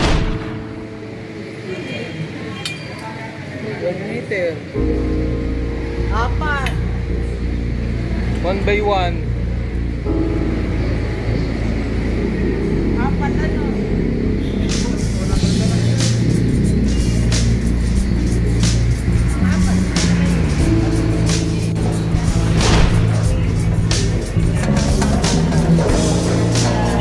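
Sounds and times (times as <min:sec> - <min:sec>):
indistinct voices: 0:05.9 - 0:27.0
background music with a beat: 0:14.6 - 0:27.0.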